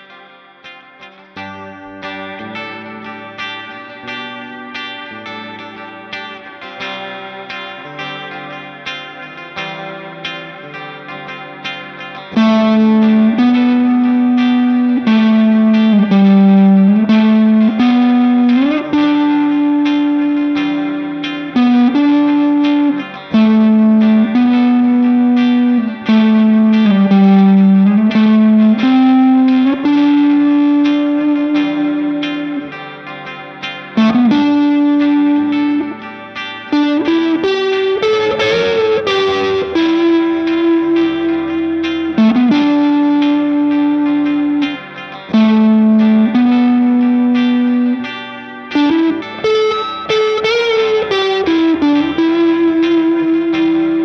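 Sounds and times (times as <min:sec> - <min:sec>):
overdriven electric guitar lead: 0:00.0 - 0:54.0.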